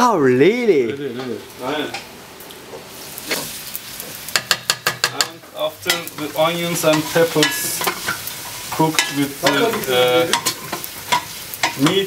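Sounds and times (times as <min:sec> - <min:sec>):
food sizzling in a pan: 0:00.5 - 0:12.0.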